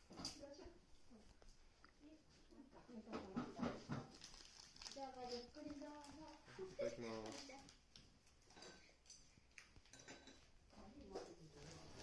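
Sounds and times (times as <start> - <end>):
people talking: 2.0 - 3.9, 10.8 - 12.0.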